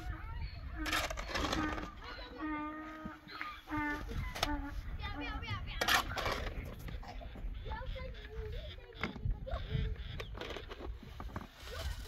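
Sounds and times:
people talking: 0.0s - 10.7s, 11.6s - 12.0s.

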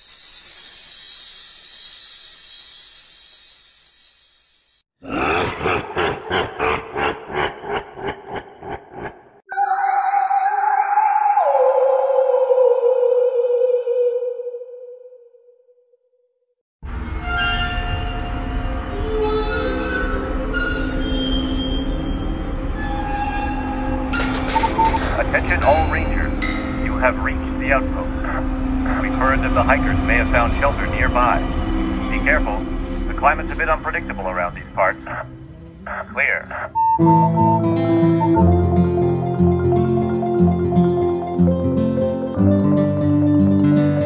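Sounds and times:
shimmering chime: 0.0s - 4.8s
sustained drone tones: 18.4s - 41.2s
low rumble: 24.0s - 34.3s
low throbbing pulses: 24.0s - 36.8s.

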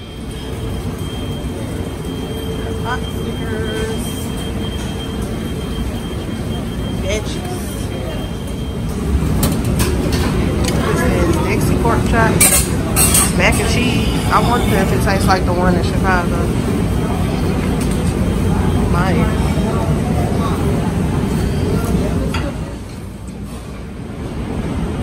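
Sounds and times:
thin steady whine: 0.0s - 9.3s, 11.0s - 21.9s
room noise: 8.0s - 19.8s
indistinct background voices: 9.8s - 22.9s.

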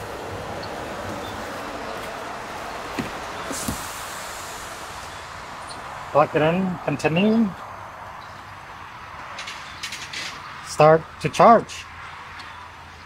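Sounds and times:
steady background noise: 0.0s - 13.0s
brief hiss: 3.4s - 5.7s.

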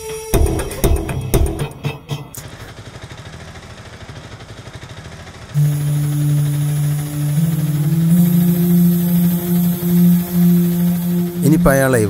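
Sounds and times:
auto-rickshaw engine running: 0.3s - 12.0s
street traffic: 1.8s - 12.0s
music cue: 5.6s - 12.0s.

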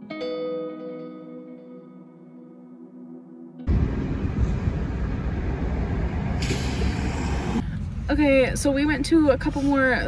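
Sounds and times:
wind buffeting microphone: 3.7s - 10.0s.

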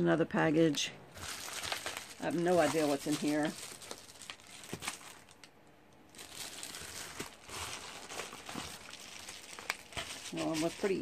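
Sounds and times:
plastic package crinkling: 1.1s - 11.0s.

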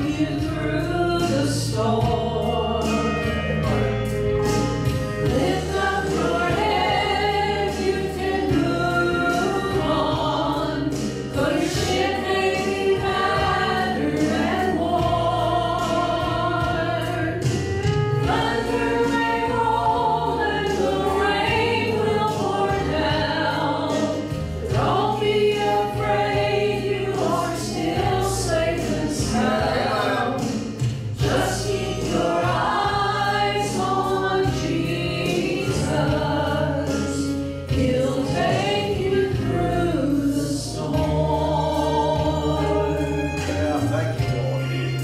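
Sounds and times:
women singing gospel in harmony: 0.0s - 43.8s
instrumental accompaniment with bass: 0.0s - 45.0s.

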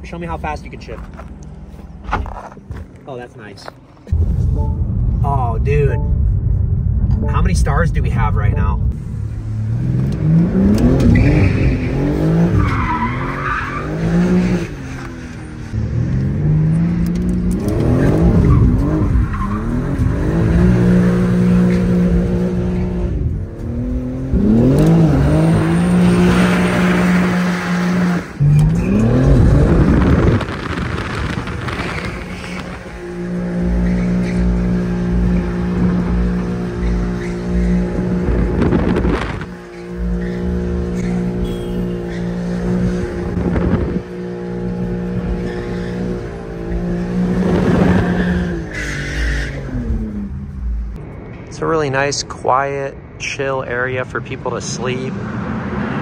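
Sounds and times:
car engine revving: 4.0s - 51.9s.

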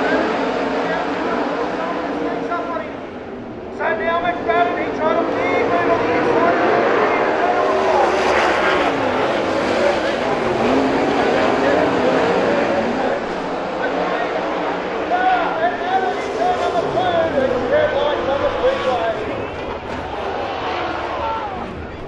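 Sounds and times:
race car engines accelerating: 0.0s - 22.0s.

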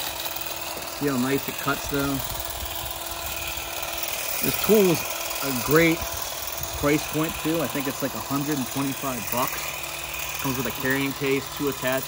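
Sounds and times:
hedge trimmer humming: 0.0s - 12.0s.

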